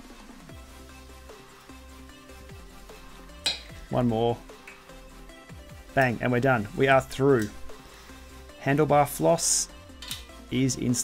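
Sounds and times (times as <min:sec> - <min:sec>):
electronic music with falling sweeps: 0:00.0 - 0:11.0.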